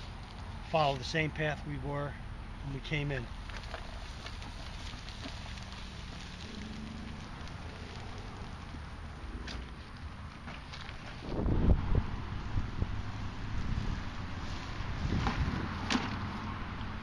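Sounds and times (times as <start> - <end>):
wind buffeting microphone: 11.0 - 17.0.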